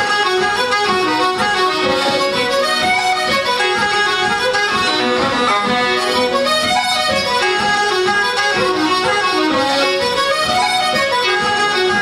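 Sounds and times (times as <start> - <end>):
accordion: 0.0 - 12.0
fiddle: 0.0 - 12.0
uilleann pipes: 0.0 - 12.0.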